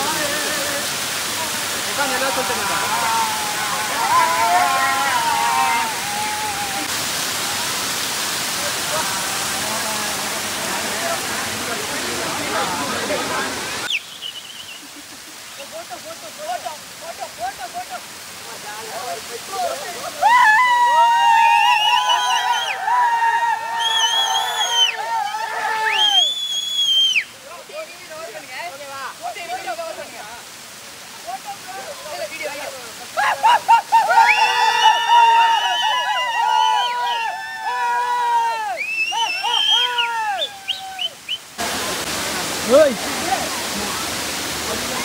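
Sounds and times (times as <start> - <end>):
men yelling long cries: 0.0 - 6.9, 19.0 - 26.2, 31.4 - 41.0
waterfall rushing over rock: 0.0 - 45.0
bird chirps: 13.9 - 14.8.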